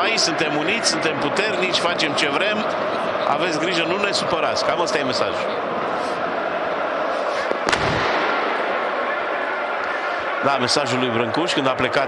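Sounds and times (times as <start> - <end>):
stadium crowd noise: 0.0 - 12.0
loud firecracker bang: 7.5 - 8.8.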